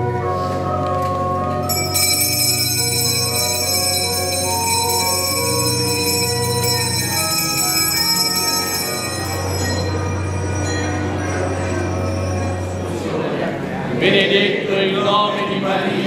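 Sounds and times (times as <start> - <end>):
bells ringing: 1.6 - 13.6.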